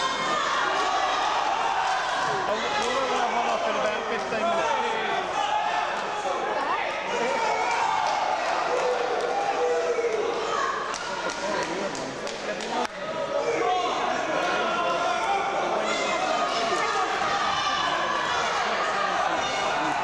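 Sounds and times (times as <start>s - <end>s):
audience chattering: 0.0s - 20.0s.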